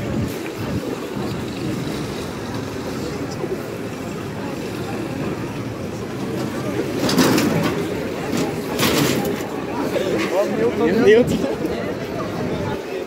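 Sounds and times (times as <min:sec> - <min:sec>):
indistinct voices of passers-by: 0:00.0 - 0:13.0
low street rumble: 0:00.0 - 0:13.0.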